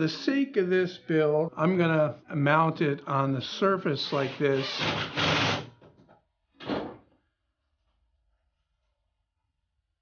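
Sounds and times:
cordless drill driving screw: 0:04.3 - 0:05.7.

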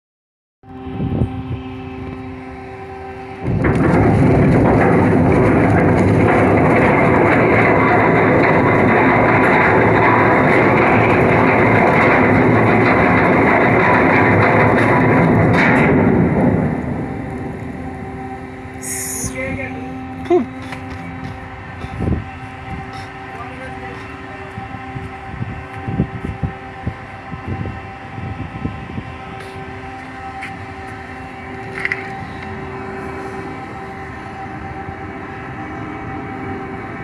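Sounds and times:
machinery hum with held tones: 0:00.6 - 0:37.0.

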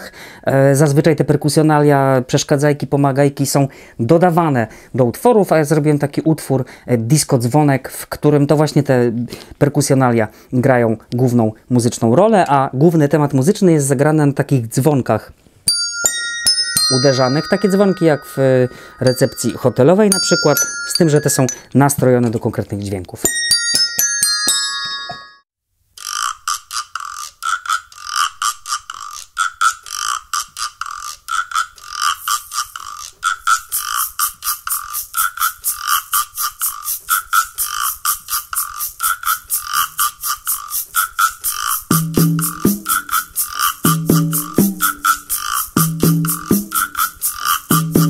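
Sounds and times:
desk bells dinging: 0:15.7 - 0:22.2, 0:23.2 - 0:25.4
small percussion piece: 0:15.7 - 0:22.2, 0:23.2 - 0:25.4, 0:26.4 - 0:48.0.

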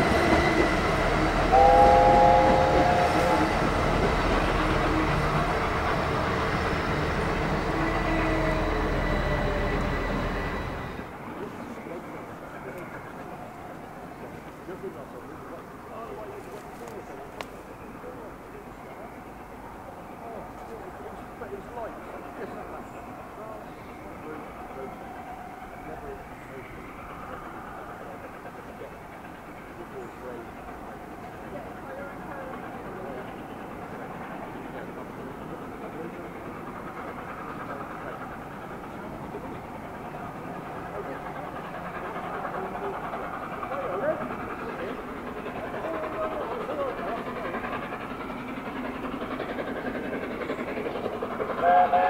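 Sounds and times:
steam locomotive rumbling: 0:00.0 - 0:52.0
train hum and hiss: 0:00.0 - 0:52.0
faint voices: 0:01.6 - 0:06.3, 0:11.0 - 0:52.0.

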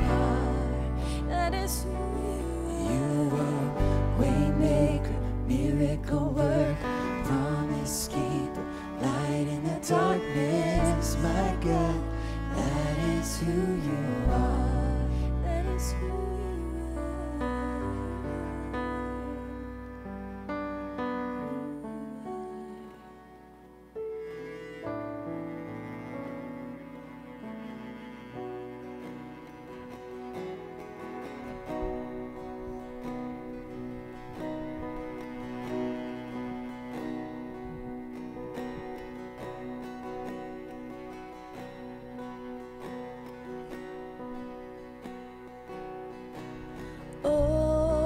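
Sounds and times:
bowed string long notes: 0:00.0 - 0:48.0
guitar: 0:00.0 - 0:48.0
keyboard: 0:00.0 - 0:48.0.

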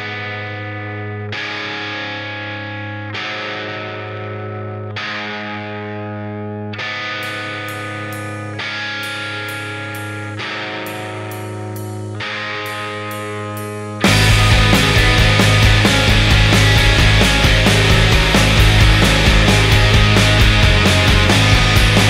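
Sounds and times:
distorted electric guitar chords: 0:00.0 - 0:22.0.

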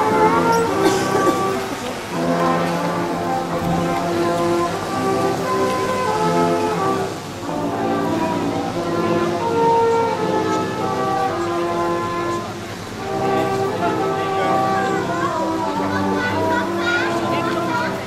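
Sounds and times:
brass ensemble playing held chords: 0:00.0 - 0:18.0
faint steady hiss: 0:00.0 - 0:18.0.

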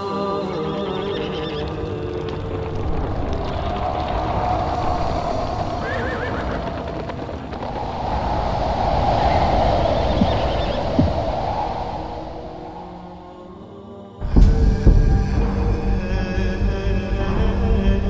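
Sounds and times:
dense low rumble: 0:14.2 - 0:18.0.

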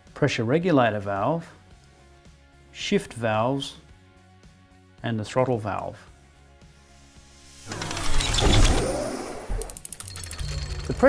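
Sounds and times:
brief rapid flutter: 0:07.5 - 0:10.1.

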